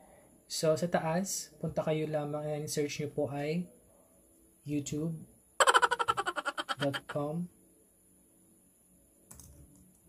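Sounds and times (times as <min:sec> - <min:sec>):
laptop keyboard keystrokes: 0:09.3 - 0:09.6.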